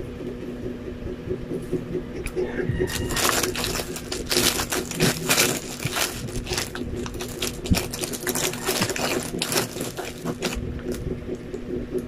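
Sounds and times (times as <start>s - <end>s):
plastic bag crinkling: 2.8s - 11.0s.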